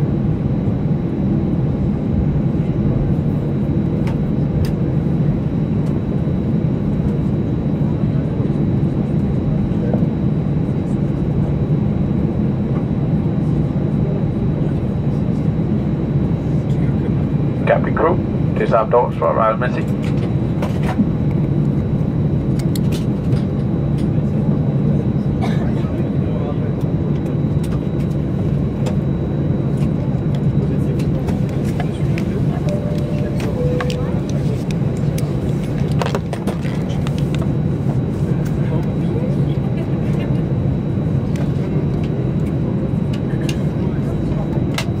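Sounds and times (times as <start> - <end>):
airplane cabin hum: 0.0 - 45.0.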